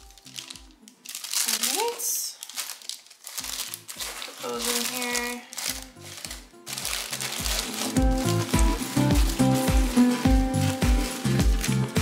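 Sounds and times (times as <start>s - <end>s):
paper crinkling and rustling: 0.0s - 12.0s
electronic music with bass beat: 8.0s - 12.0s.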